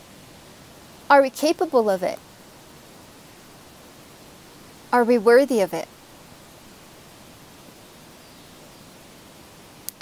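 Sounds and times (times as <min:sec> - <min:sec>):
faint background hiss: 0:00.0 - 0:10.0
person speaking: 0:01.1 - 0:02.2, 0:05.0 - 0:05.9.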